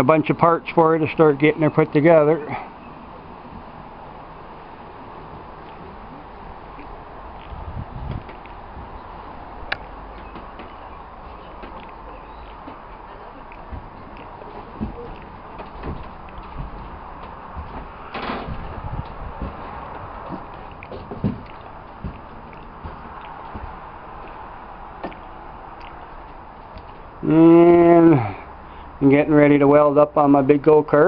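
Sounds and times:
man voicing held syllable: 0:27.2 - 0:28.3.

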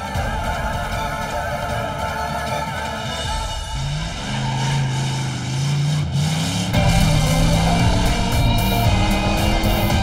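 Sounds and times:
background music: 0:00.0 - 0:10.0
motorcycle engine accelerating: 0:03.6 - 0:10.0.

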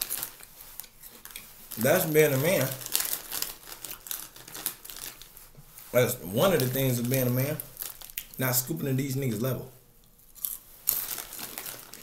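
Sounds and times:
clothing rustling near microphone: 0:00.0 - 0:08.1.

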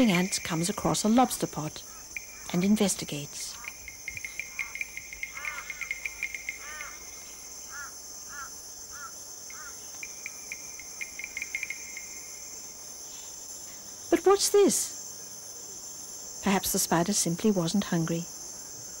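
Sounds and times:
cricket-like trill: 0:00.0 - 0:13.5
high-pitched insect drone: 0:00.0 - 0:13.6
short evenly spaced chirps: 0:03.6 - 0:07.5, 0:09.9 - 0:12.6.

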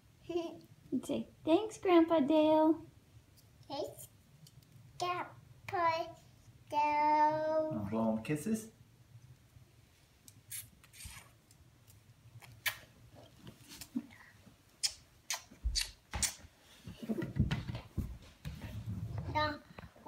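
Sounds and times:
child blowing kisses: 0:12.4 - 0:12.9, 0:14.8 - 0:16.5.

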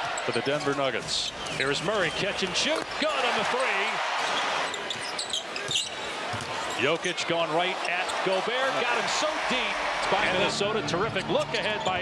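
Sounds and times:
arena crowd: 0:00.0 - 0:12.0
sneakers squeaking on hardwood floor: 0:04.3 - 0:07.0
basketball bouncing: 0:04.9 - 0:06.6.

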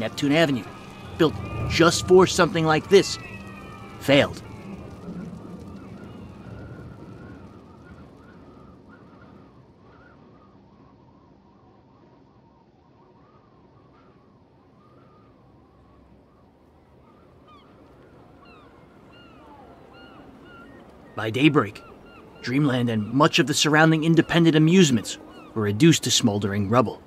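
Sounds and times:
short high calls: 0:00.0 - 0:06.8
wavering calls: 0:00.0 - 0:10.6, 0:13.0 - 0:27.0
low noisy haze: 0:00.0 - 0:27.0.

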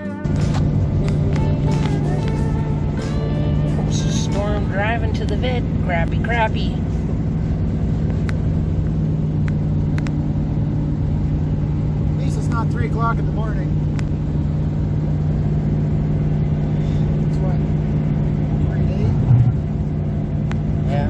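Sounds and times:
vehicle engine and tyres drone: 0:00.0 - 0:21.0.

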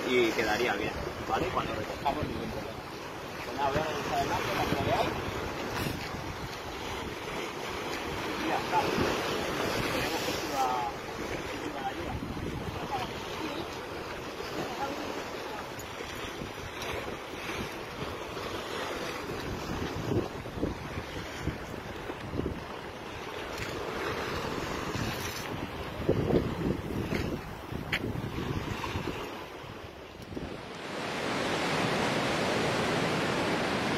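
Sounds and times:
sea surf breaking on concrete: 0:00.0 - 0:33.9
wind buffeting microphone: 0:03.6 - 0:33.9.

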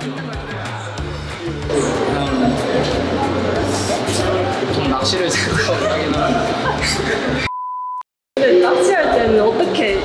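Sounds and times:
people talking: 0:01.7 - 0:07.4, 0:08.4 - 0:10.0
censor bleep tone: 0:07.5 - 0:08.0.

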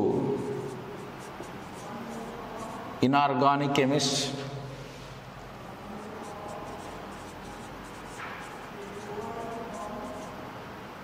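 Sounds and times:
marker writing on whiteboard: 0:00.2 - 0:03.0, 0:05.6 - 0:10.4.

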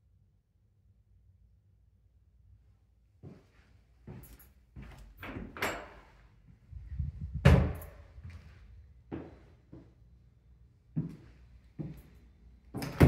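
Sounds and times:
knocks and bumps on a door: 0:07.4 - 0:07.9
heavy door thud: 0:07.4 - 0:08.0.

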